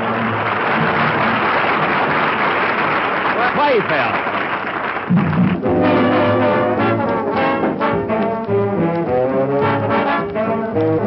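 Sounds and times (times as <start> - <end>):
audience applause: 0.0 - 7.3.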